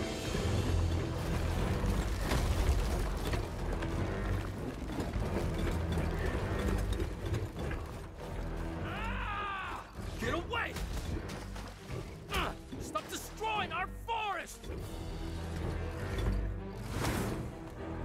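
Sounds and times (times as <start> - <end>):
music: 0.0 - 18.0
mechanical clanking and ratcheting: 2.0 - 8.4.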